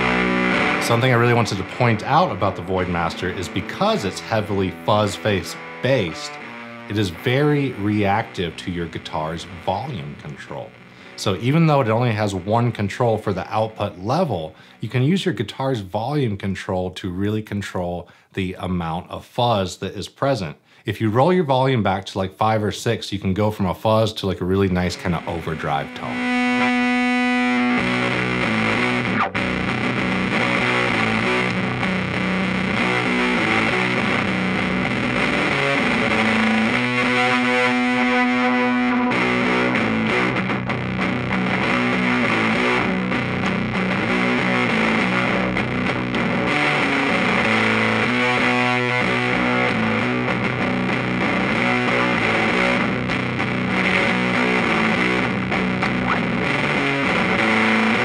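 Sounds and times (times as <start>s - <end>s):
fuzzed electric guitar riffing: 0.0s - 15.1s, 24.3s - 58.0s.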